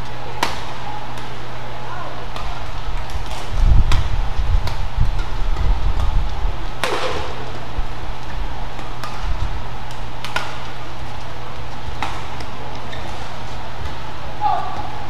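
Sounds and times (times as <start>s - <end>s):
racket hitting shuttlecock: 0.0s - 1.4s, 2.3s - 6.1s, 6.7s - 14.9s.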